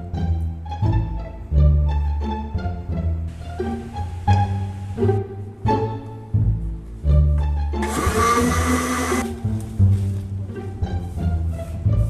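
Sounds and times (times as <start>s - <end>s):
background string music: 0.0s - 12.0s
blender running at high speed: 7.8s - 9.2s.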